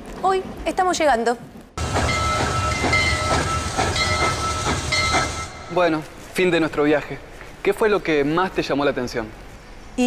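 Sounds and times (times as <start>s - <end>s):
rhythmic puffs: 1.8s - 6.6s
train rumbling: 1.8s - 7.4s.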